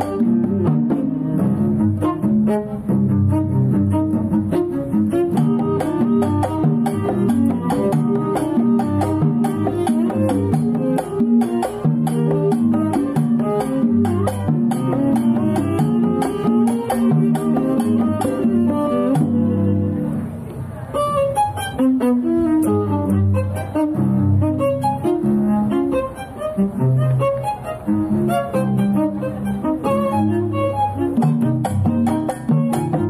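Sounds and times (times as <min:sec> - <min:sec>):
string ensemble playing lively music: 0:00.0 - 0:33.0.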